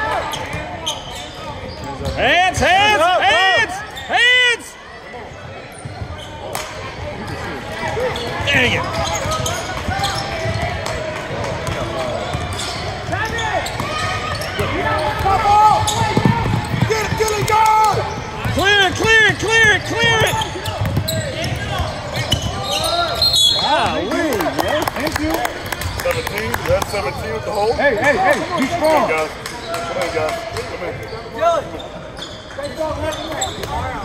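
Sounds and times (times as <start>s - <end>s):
sneakers squeaking on hardwood: 0.1s - 2.3s, 5.3s - 6.5s, 7.2s - 24.1s, 31.0s - 34.0s
basketball bouncing: 8.4s - 22.6s.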